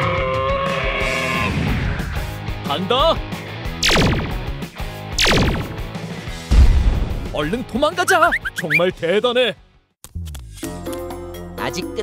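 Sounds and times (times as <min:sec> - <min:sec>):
background music: 0:00.0 - 0:12.0
cartoon laser zaps: 0:03.8 - 0:04.5, 0:05.2 - 0:05.8.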